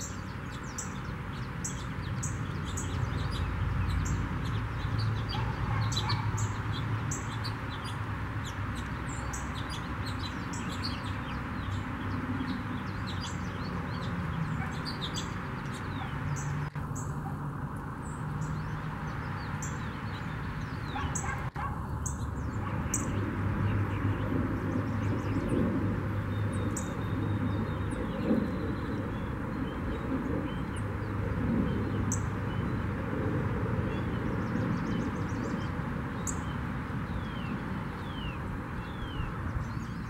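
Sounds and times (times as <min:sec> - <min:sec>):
small songbirds chirping: 0:00.0 - 0:40.0.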